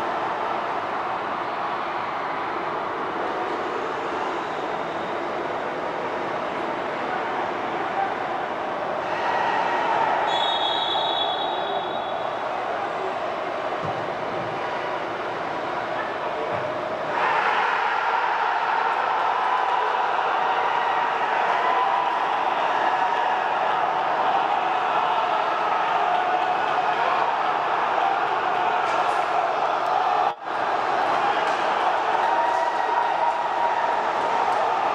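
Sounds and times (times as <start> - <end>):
stadium crowd roar: 0.0 - 34.9
high whistle blast: 10.2 - 12.4.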